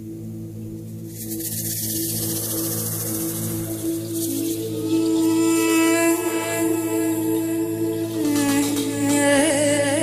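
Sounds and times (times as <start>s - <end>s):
bright hissing shimmer: 0.3s - 10.0s.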